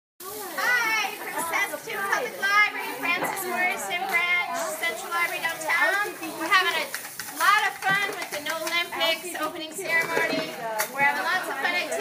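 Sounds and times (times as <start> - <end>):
children talking and calling out: 0.2 - 12.0.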